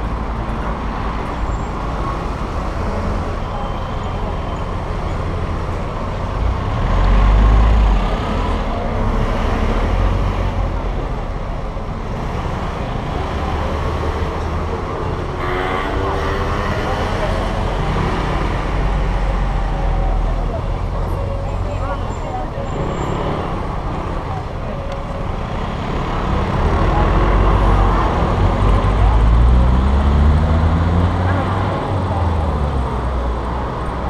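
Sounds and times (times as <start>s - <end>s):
car engine and road noise: 0.0s - 34.0s.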